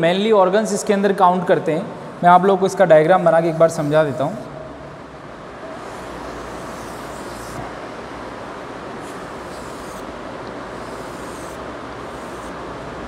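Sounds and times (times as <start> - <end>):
steady rushing background noise: 2.1 - 13.0
chalk scraping on a blackboard: 5.9 - 7.7, 10.7 - 12.6.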